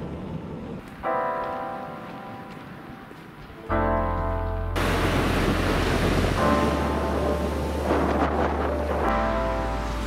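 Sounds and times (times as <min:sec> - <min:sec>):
background music: 0:01.0 - 0:10.0
waves breaking on beach: 0:04.8 - 0:10.0.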